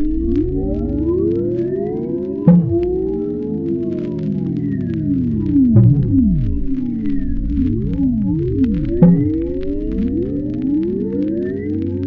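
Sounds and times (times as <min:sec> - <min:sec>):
faint ticks: 0:00.0 - 0:12.0
low drone: 0:00.0 - 0:12.0.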